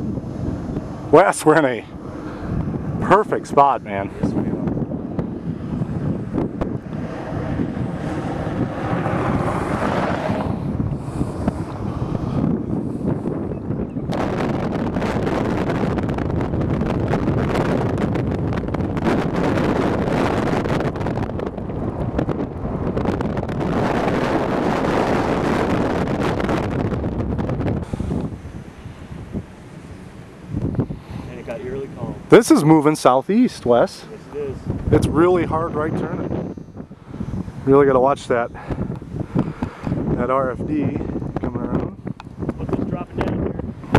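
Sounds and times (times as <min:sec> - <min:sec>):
storm wind on microphone: 0:00.0 - 0:43.9.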